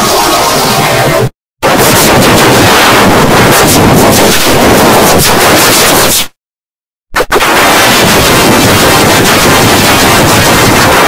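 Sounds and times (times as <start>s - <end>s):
heavily distorted noise: 0.0s - 6.4s, 7.2s - 11.0s.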